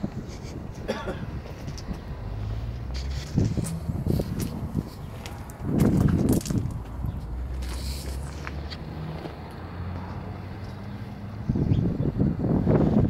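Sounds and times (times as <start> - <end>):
low vehicle engine hum: 0.0 - 13.0
wind rumbling on microphone: 0.0 - 13.0.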